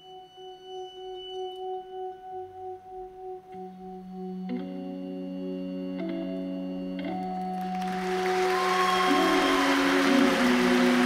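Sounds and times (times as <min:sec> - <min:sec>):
organ drone: 0:00.0 - 0:11.0.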